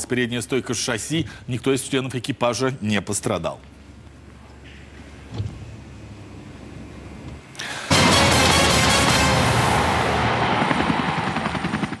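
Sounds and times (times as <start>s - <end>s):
tv jingle music: 7.9s - 10.2s
helicopter rotor chopping: 7.9s - 12.0s.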